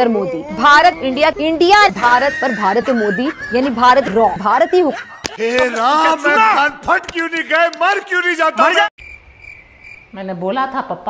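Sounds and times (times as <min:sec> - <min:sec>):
man wailing: 0:05.3 - 0:06.8
crickets chirping: 0:09.0 - 0:10.3.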